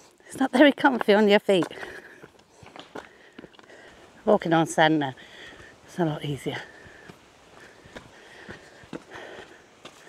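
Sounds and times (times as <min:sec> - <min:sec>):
footsteps on loose stones: 0:00.0 - 0:10.0.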